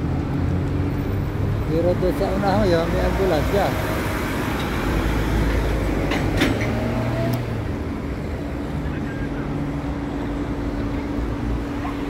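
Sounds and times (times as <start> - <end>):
vehicle engines running: 0.0 - 12.0.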